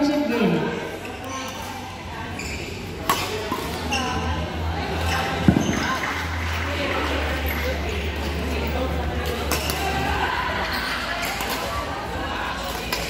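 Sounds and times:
background chatter: 0.0 - 13.0.

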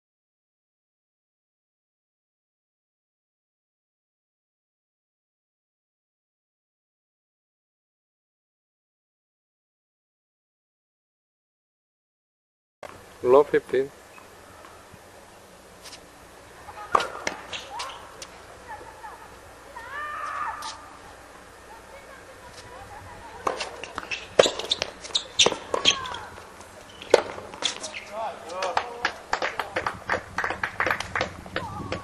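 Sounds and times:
tennis ball struck by rackets: 16.8 - 18.3, 23.3 - 26.4, 27.0 - 29.8
ball bouncing on hard court: 16.9 - 18.3, 23.4 - 26.3, 27.0 - 28.1
players shouting: 18.7 - 21.5, 25.2 - 26.6.

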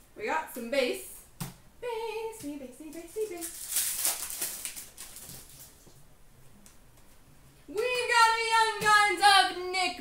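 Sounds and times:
wrapper crinkling and rustling: 3.0 - 5.9.

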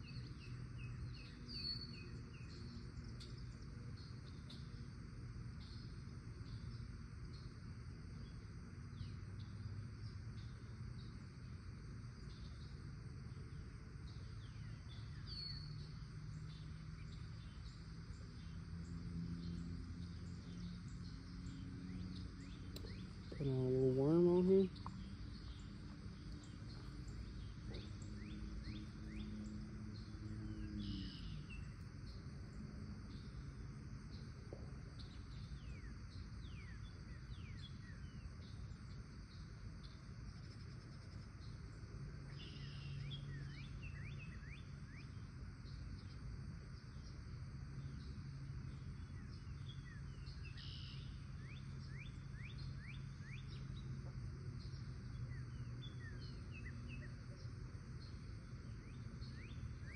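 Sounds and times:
small birds chirping: 0.0 - 7.6, 8.2 - 59.9
faint low hum: 0.0 - 59.9
low outdoor rumble: 0.0 - 59.9.

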